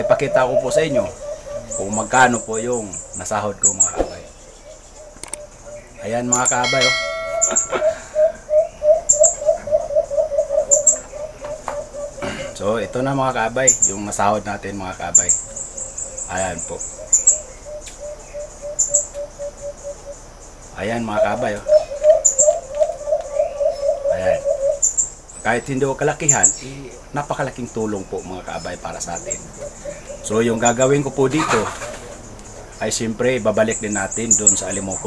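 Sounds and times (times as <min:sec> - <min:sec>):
high bird chirps: 0:00.0 - 0:09.9
dove cooing: 0:00.0 - 0:27.2, 0:28.4 - 0:32.8.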